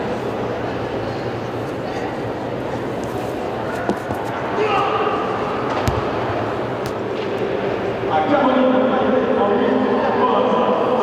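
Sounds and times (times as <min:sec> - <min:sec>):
voices in a large hall: 0:00.0 - 0:11.0.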